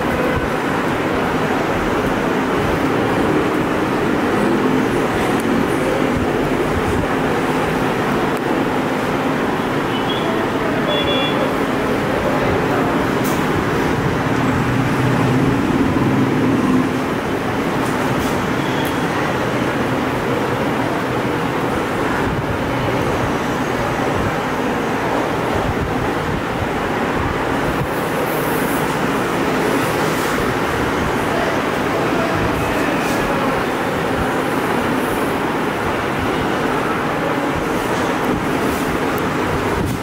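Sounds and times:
loud background rumble and hiss: 0.0s - 40.0s.

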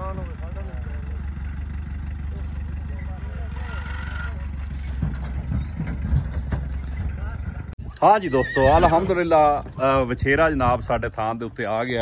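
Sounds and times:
pickup truck engine rumbling: 0.0s - 7.9s.

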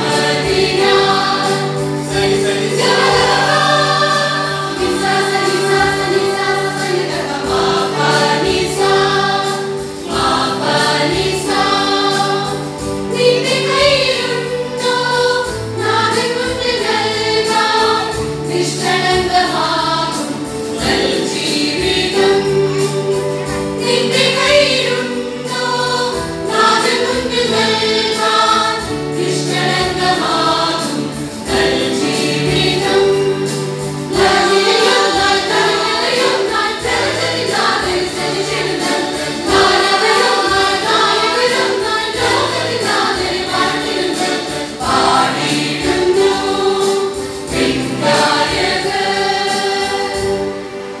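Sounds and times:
choir singing a church song: 0.0s - 51.0s
musical accompaniment with steady beat: 0.0s - 51.0s.

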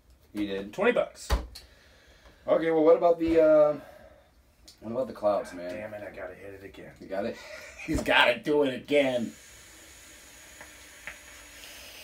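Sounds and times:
vape coil sizzling: 9.1s - 12.0s.

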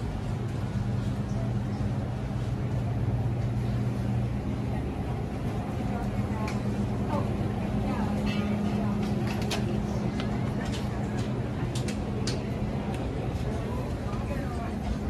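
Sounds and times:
background chatter of shoppers: 0.0s - 15.0s
low machine hum: 0.0s - 15.0s.

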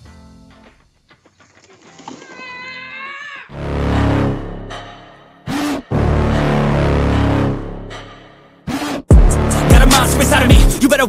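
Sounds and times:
child screaming: 2.2s - 3.6s.

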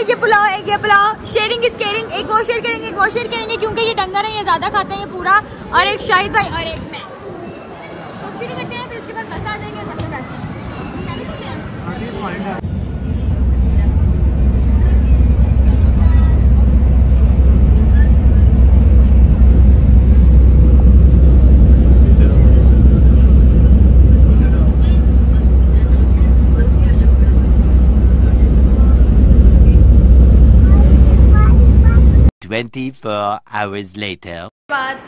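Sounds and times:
bus engine and road drone: 12.6s - 32.3s.

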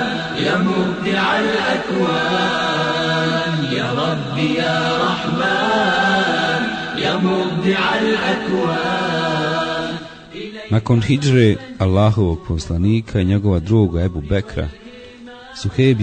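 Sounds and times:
voices singing slow melody: 0.0s - 16.0s.

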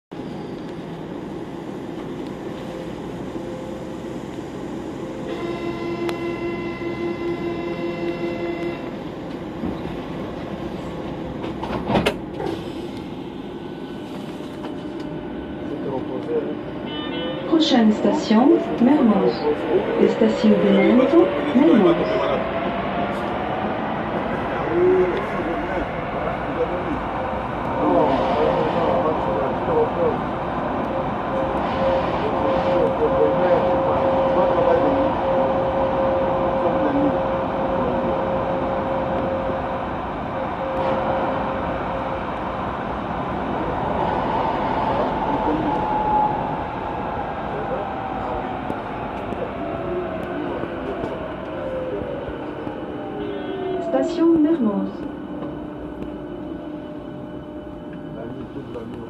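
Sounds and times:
train running rumble: 0.1s - 16.9s, 17.5s - 59.0s
train electric traction whine: 0.2s - 59.0s.

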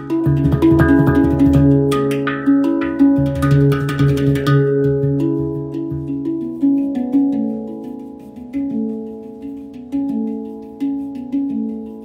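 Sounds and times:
handpan notes ringing: 0.0s - 12.0s.

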